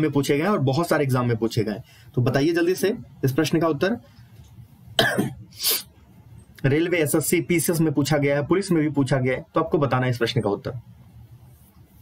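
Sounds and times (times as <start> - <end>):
man coughing: 5.0 - 5.8.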